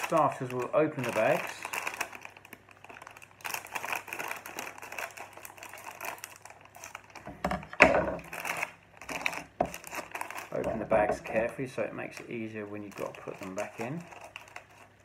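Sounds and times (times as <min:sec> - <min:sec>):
plastic bag crinkling: 0:00.0 - 0:15.0.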